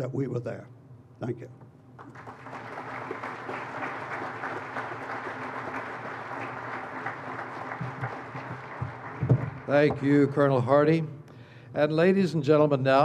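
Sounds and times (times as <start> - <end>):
audience applauding: 2.0 - 10.3.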